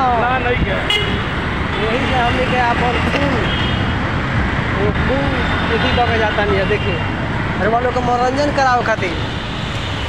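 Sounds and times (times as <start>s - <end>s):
road traffic noise: 0.0s - 10.0s
people talking: 4.8s - 9.3s.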